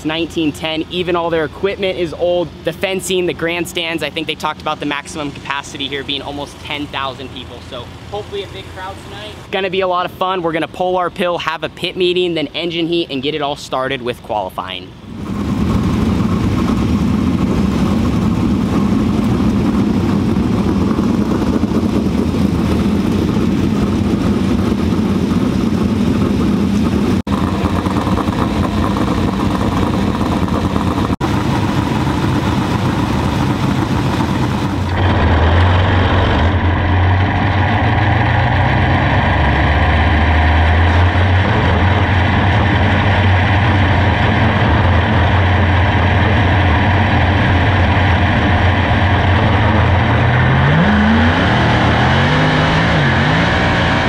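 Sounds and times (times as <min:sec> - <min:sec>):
race car engine deep rumble: 0:00.0 - 0:11.8, 0:14.4 - 0:54.0
vehicle engines running: 0:00.0 - 0:54.0.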